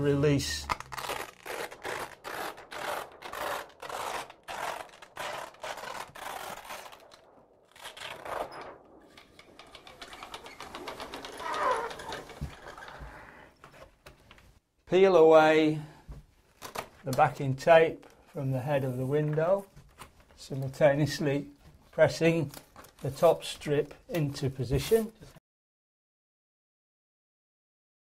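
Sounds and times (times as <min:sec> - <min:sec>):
velcro strips peeling apart: 0:00.7 - 0:08.6.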